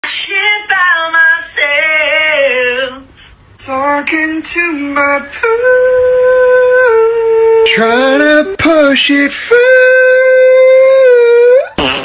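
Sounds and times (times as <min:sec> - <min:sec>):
cartoon fart sound effect: 0:11.7 - 0:12.0.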